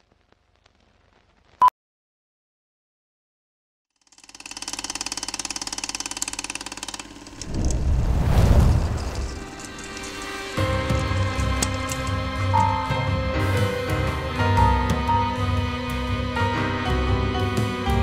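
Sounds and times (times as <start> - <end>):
fast fluttering rattle: 4.0 - 12.2.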